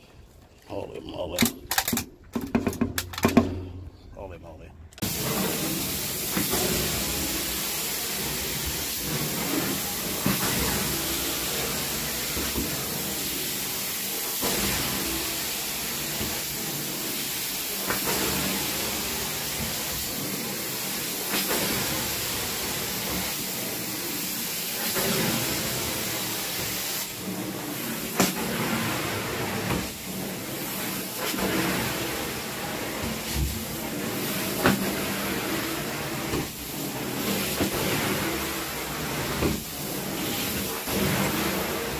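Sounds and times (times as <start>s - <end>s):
carpet extraction wand hissing: 5.0s - 41.9s.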